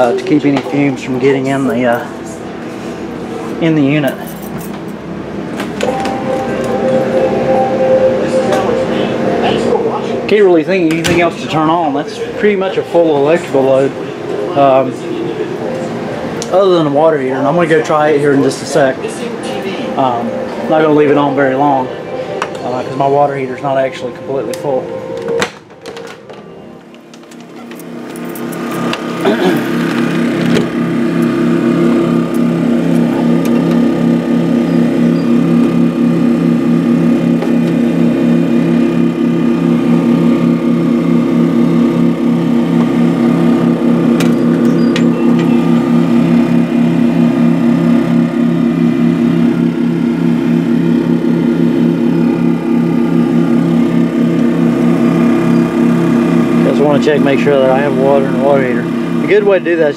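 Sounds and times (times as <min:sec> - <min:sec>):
generators humming: 0:00.0 - 0:59.9.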